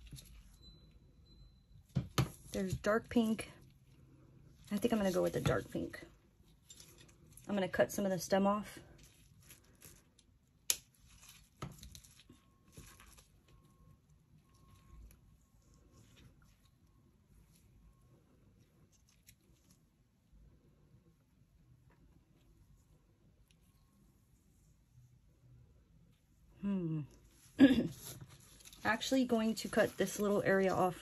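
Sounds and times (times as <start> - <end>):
dried flowers rustling and crinkling: 2.3 - 16.8, 27.2 - 31.0.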